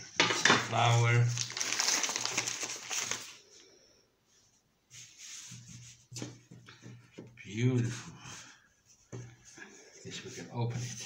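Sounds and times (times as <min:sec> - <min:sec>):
paper bag crinkling: 0:00.3 - 0:03.4.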